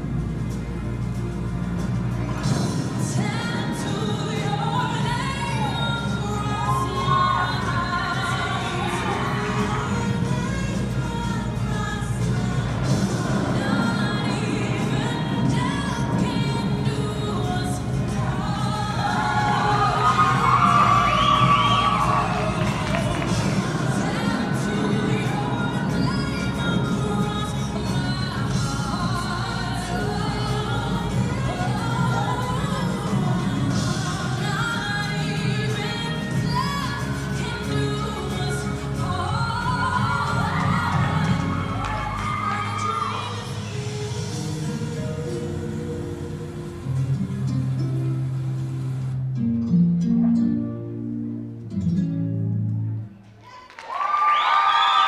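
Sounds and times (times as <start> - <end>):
dance music over pa: 0.0 - 48.7
sung vocal line: 2.1 - 49.2
audience whooping and cheering: 6.5 - 10.3, 18.8 - 28.6, 39.7 - 43.9, 53.2 - 55.0.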